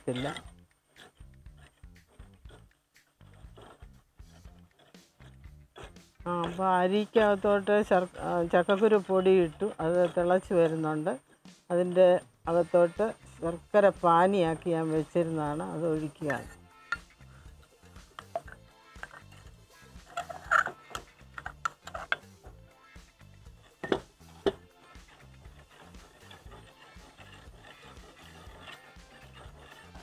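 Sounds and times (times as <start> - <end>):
ladle stirring in clay pot: 0.0 - 30.0
soft background music: 0.0 - 30.0.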